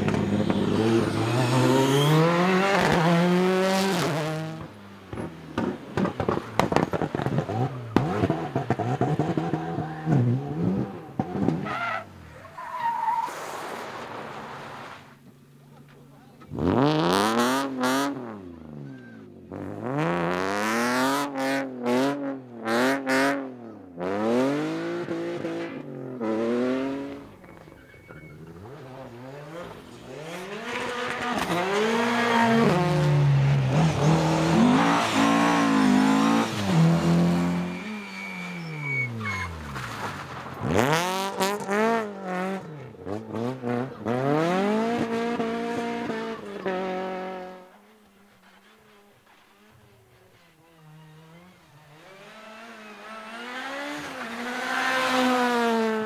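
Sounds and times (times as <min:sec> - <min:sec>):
rally cars revving past: 0:00.0 - 0:11.8, 0:16.5 - 0:27.7, 0:28.4 - 0:47.8, 0:50.7 - 0:56.0.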